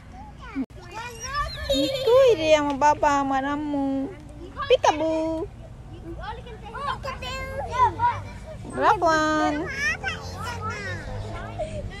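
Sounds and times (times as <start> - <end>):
small children chattering: 0.0 - 12.0.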